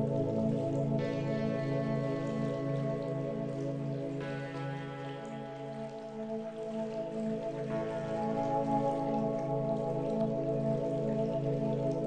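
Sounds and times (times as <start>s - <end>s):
calm new-age music: 0.0s - 12.0s.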